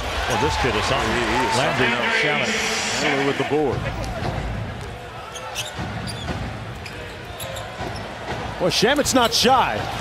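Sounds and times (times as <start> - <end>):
shoe squeaks and clicks: 5.2 - 8.2.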